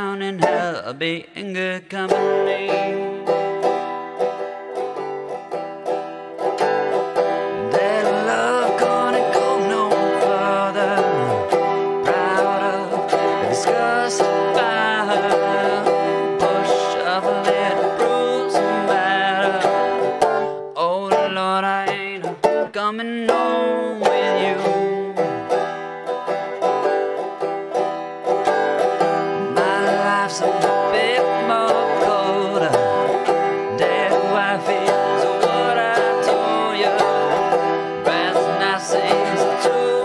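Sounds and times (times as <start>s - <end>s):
banjo strumming: 0.0s - 40.0s.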